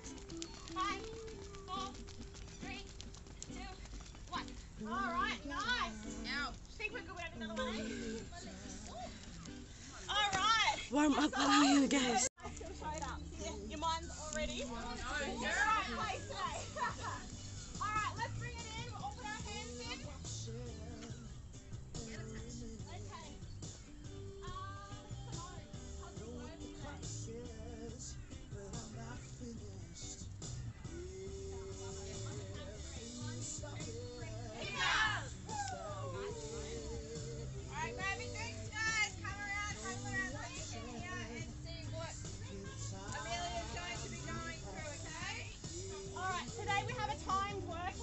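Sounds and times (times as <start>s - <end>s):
high-pitched voices chattering: 0.0s - 20.7s, 30.9s - 48.0s
faint background music: 0.0s - 48.0s.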